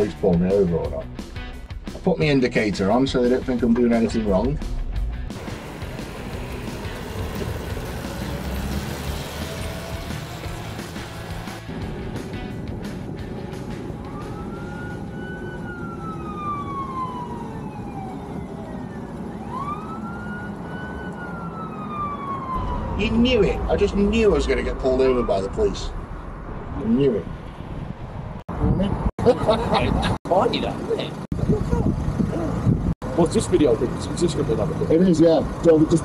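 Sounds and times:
small car running: 5.4s - 12.1s
police siren wailing: 13.3s - 26.0s.

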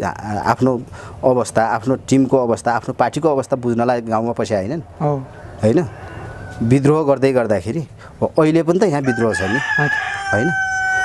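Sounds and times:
man talking: 0.0s - 4.9s, 5.6s - 5.9s, 6.6s - 10.6s
rooster crowing: 5.3s - 6.8s, 9.0s - 11.0s.

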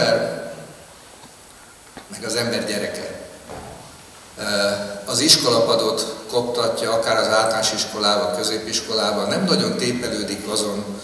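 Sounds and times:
man speaking into microphone: 0.0s - 0.5s, 2.1s - 3.4s, 4.4s - 11.0s.

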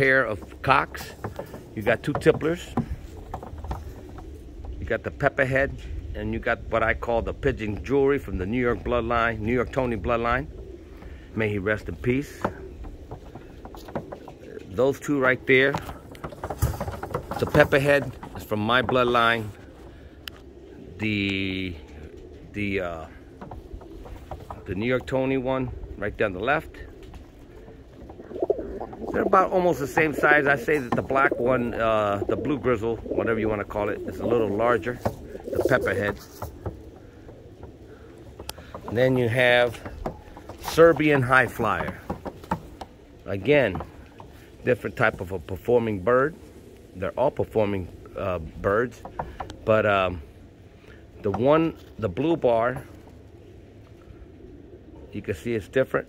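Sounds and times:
pigeon cooing: 0.0s - 56.0s.

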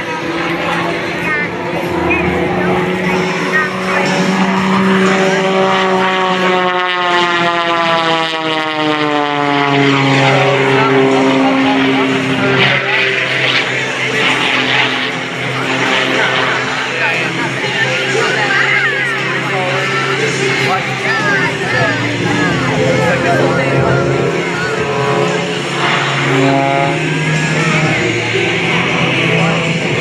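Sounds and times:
propeller plane engine at high power: 0.0s - 30.0s.

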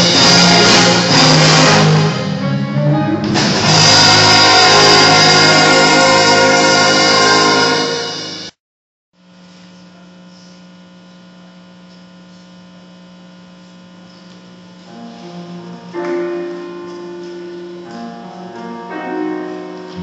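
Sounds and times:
jazz band playing: 0.0s - 8.5s, 15.0s - 20.0s
electrical mains hum: 9.2s - 18.6s.

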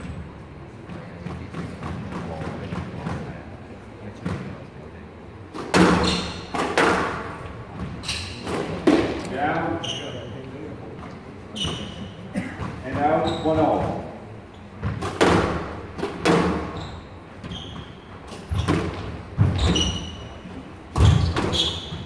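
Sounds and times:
squash ball hit by racquets: 5.5s - 9.2s, 14.8s - 16.8s, 18.3s - 20.1s, 20.9s - 22.0s
ball hitting court walls: 5.5s - 9.9s, 10.9s - 14.2s, 14.8s - 20.2s, 20.9s - 22.0s.

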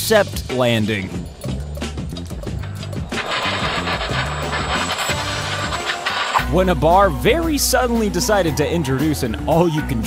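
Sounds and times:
background music: 0.0s - 10.0s
thin high whine: 2.6s - 7.0s
model jet scraping along ground: 3.1s - 6.6s.

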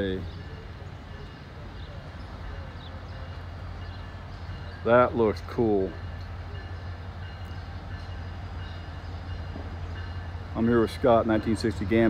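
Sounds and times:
diesel locomotive engine droning: 0.0s - 12.0s.

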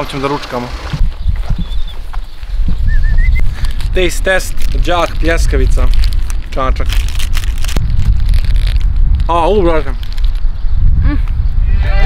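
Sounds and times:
wind buffeting the microphone: 0.8s - 12.0s
crackles and clicks: 3.5s - 10.6s.

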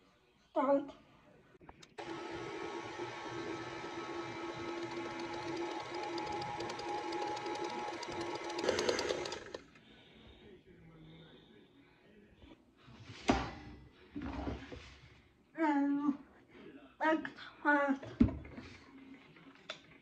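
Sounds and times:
electric stand mixer running: 1.9s - 9.8s.

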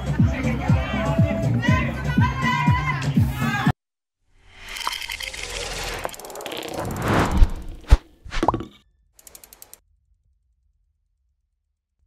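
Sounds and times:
whoosh: 4.4s - 8.6s
short upward swoop: 6.2s - 8.6s
quick run of ticks: 9.2s - 9.8s.

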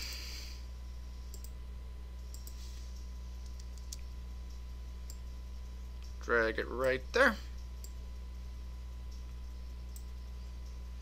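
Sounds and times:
low electrical hum: 0.0s - 11.0s
computer mouse clicks: 1.3s - 1.6s, 2.3s - 2.6s, 3.4s - 5.3s, 9.1s - 10.8s.

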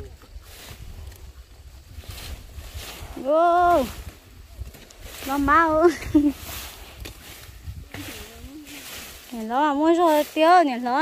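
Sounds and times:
rustling leaves and stalks: 0.0s - 11.0s
wind rumbling on microphone: 0.0s - 11.0s.

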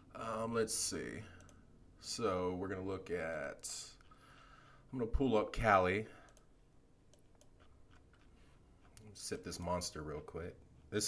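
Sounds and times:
faint small clicks: 6.3s - 6.5s.

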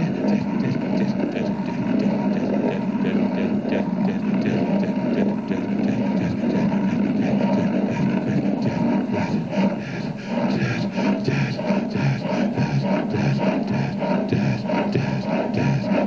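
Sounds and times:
dense electronic noise: 0.0s - 16.0s.

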